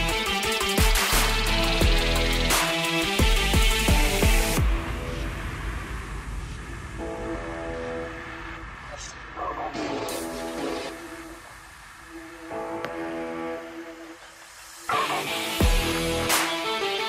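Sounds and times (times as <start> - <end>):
electronic music synth chords: 0.0 - 9.0, 9.7 - 17.0.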